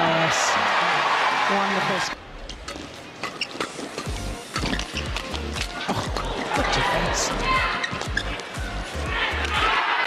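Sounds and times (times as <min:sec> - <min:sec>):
court shoes squeaking: 0:02.4 - 0:09.7.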